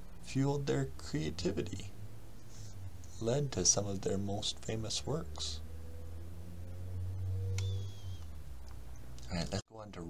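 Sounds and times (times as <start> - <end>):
low electrical hum: 0.0 - 5.4.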